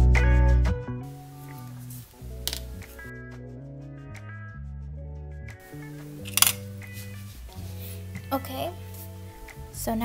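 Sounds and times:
low-note background music: 0:00.0 - 0:10.0
sharp handling noise: 0:01.4 - 0:03.1, 0:05.7 - 0:07.6.

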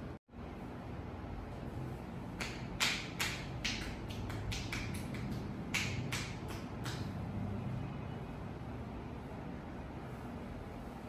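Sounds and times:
low steady hum: 0:00.0 - 0:11.0
hands rubbing skin and clothing: 0:01.5 - 0:07.2.

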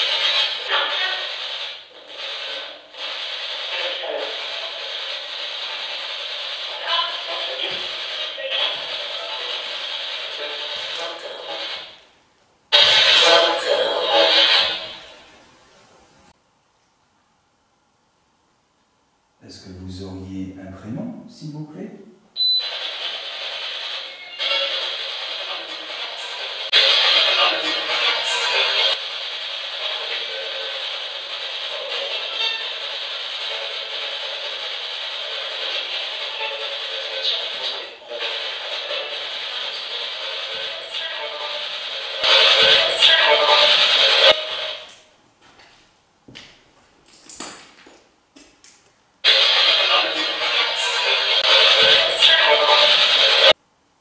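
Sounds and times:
chopped broadcast speech and music: 0:00.0 - 0:12.0, 0:12.7 - 0:15.0, 0:22.6 - 0:44.8, 0:49.2 - 0:53.6
radio static: 0:00.0 - 0:12.1, 0:12.7 - 0:15.2, 0:22.6 - 0:44.9, 0:49.2 - 0:53.6.

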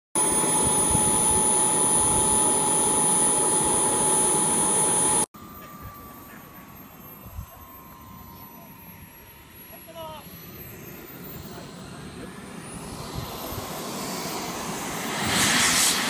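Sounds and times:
model jet engine whine: 0:00.2 - 0:16.0.

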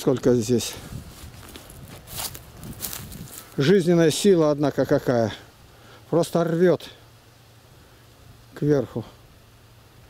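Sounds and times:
footsteps through grass: 0:00.0 - 0:04.6.

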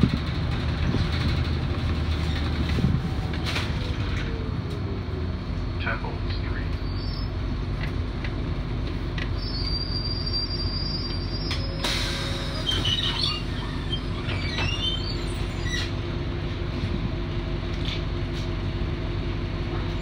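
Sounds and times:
bus body squeaks and rattles: 0:00.0 - 0:04.3, 0:06.8 - 0:07.5, 0:09.1 - 0:16.2
bus engine low rumble: 0:00.0 - 0:20.0
air brake hiss: 0:11.8 - 0:12.7.

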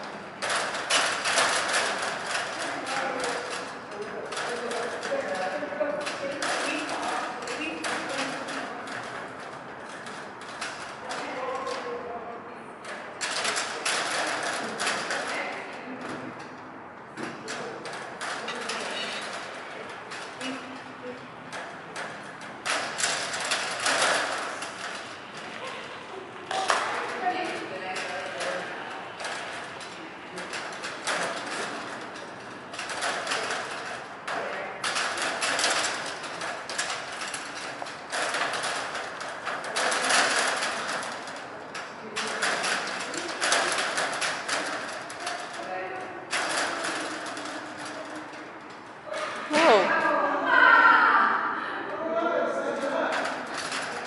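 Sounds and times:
movement noise: 0:00.0 - 0:50.0
indistinct voices: 0:00.0 - 0:54.0.

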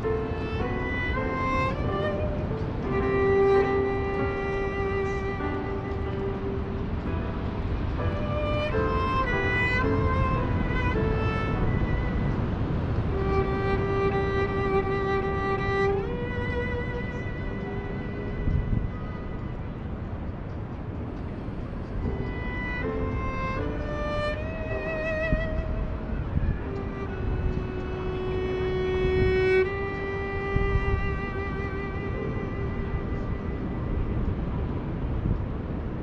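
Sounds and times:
solo cello melody: 0:00.0 - 0:36.0.

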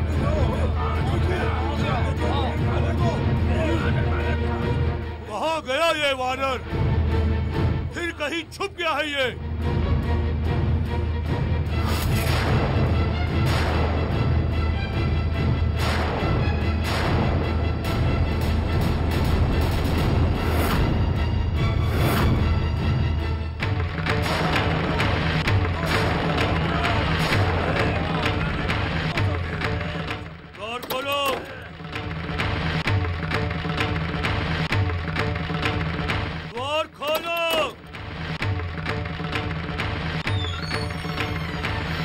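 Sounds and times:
dramatic background music: 0:00.0 - 0:36.6, 0:37.6 - 0:42.0.

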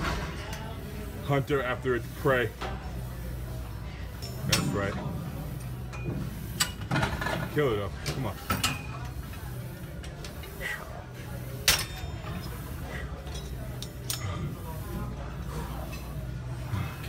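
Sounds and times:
faint distant voices: 0:00.0 - 0:17.0
low gym hum: 0:00.0 - 0:17.0.

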